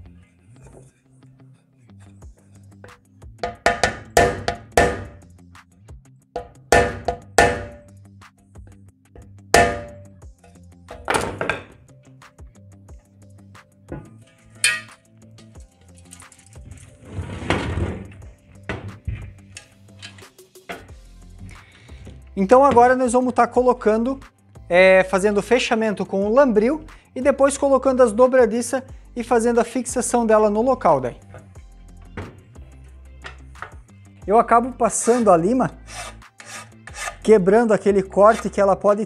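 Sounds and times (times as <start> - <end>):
faint background music: 0.0 - 39.0
hammer knocking wooden block: 3.4 - 5.2, 6.4 - 7.8, 9.6 - 10.0
scraping sound: 16.6 - 18.2.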